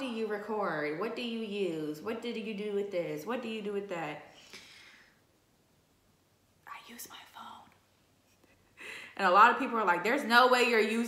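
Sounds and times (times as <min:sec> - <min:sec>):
woman whispering: 0:06.6 - 0:07.8.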